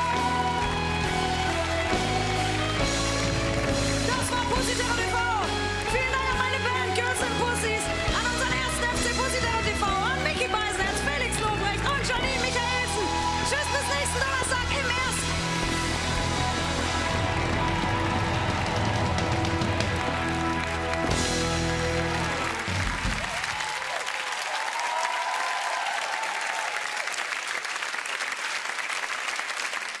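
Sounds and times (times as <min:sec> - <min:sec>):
audience applauding: 0:00.0 - 0:07.9, 0:11.3 - 0:30.0.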